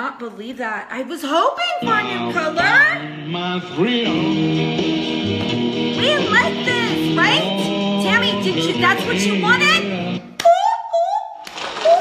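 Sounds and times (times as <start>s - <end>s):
background music: 1.8s - 10.4s.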